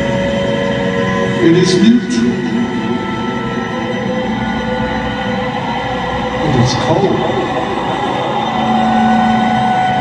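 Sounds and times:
held synthesizer and string drone: 0.0 - 10.0.

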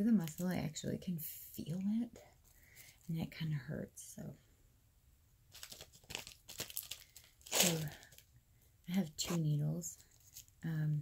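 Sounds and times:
wrapper crinkling and tearing: 5.5 - 8.3, 10.0 - 10.6.

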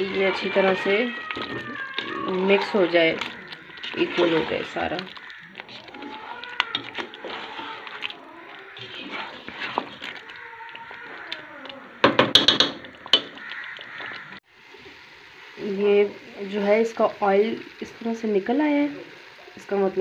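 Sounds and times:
spatula scraping and knocking pot: 0.0 - 14.3
spatula stirring in a pot: 0.0 - 14.9
gravy frying: 0.0 - 20.0.

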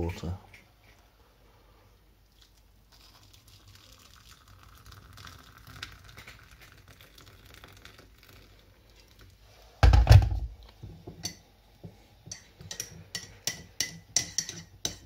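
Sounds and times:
water pouring into mug: 2.4 - 9.4
kettle knocking on base: 9.8 - 10.5.

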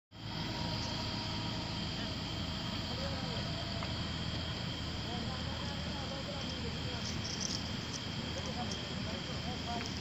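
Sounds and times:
crickets trilling: 0.1 - 10.0
low rumble: 0.2 - 8.3.

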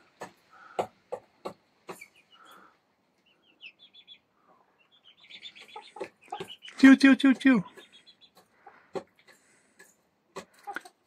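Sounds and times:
hens chirping and trilling: 0.0 - 11.0.

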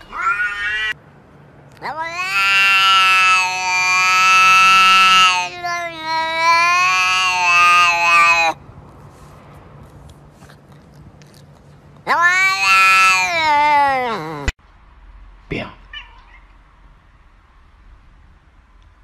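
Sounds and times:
cat meowing: 0.0 - 1.0, 1.8 - 8.6, 12.0 - 14.5, 15.8 - 16.6
cat yowling: 0.0 - 1.0, 1.8 - 8.6, 12.0 - 14.6, 15.8 - 16.6.

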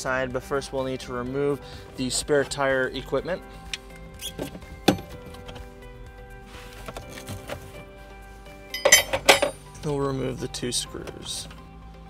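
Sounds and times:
soft background music: 0.0 - 12.0
metal tools clinking: 8.7 - 9.6.

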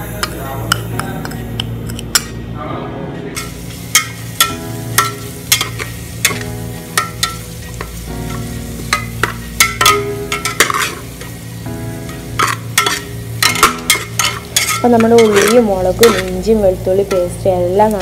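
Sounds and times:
onions sizzling in oil: 3.4 - 18.0
metal spatula scraping pot: 9.0 - 11.0, 12.4 - 17.3.

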